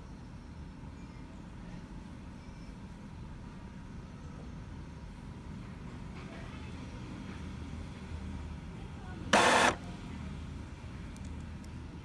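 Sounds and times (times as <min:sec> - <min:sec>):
printer mechanical hum: 0:09.3 - 0:10.0.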